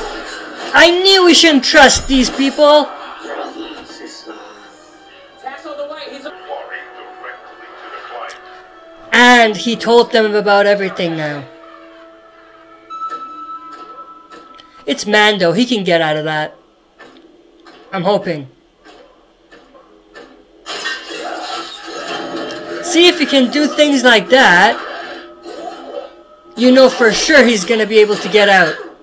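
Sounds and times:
faint tv dialogue: 0.0s - 29.0s.

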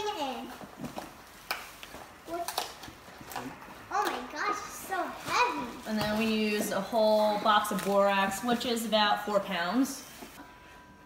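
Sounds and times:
child speaking: 0.0s - 0.5s, 2.3s - 2.7s, 3.9s - 5.9s
powder rustling: 4.8s - 10.4s.

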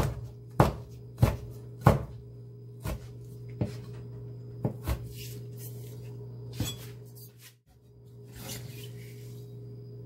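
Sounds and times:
knife chopping on cutting board: 0.0s - 2.2s, 2.8s - 3.8s, 4.6s - 5.3s.

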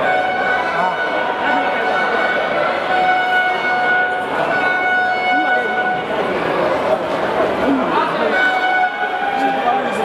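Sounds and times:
high horn-like tone: 0.0s - 6.3s, 8.2s - 10.0s
crowd talking and shouting: 0.0s - 10.0s.

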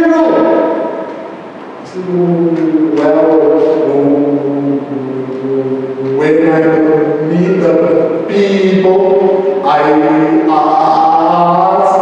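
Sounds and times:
man intoning in sing-song voice: 1.9s - 12.0s.

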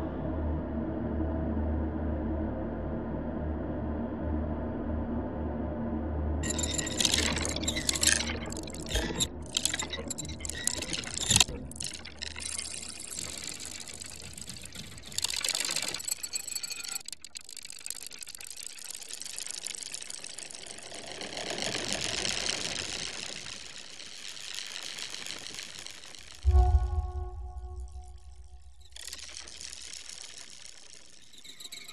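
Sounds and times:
stuttering noise bursts: 6.4s - 31.9s
low drone: 26.4s - 30.6s.

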